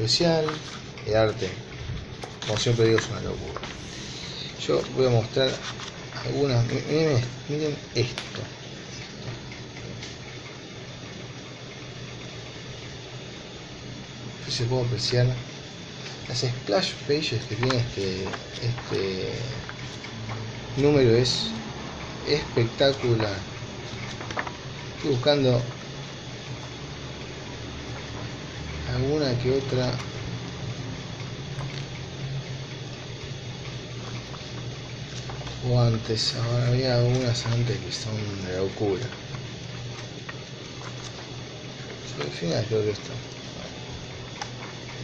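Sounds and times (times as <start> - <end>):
low even hum: 0.0 - 45.0
steady background hiss: 0.0 - 45.0
pages being flipped: 0.3 - 7.4, 17.4 - 20.5, 22.6 - 26.8, 33.6 - 45.0.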